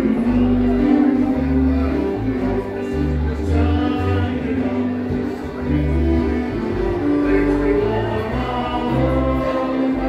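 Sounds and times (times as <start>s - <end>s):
bass line: 0.0s - 10.0s
guitar: 0.0s - 10.0s
singing: 3.4s - 10.0s.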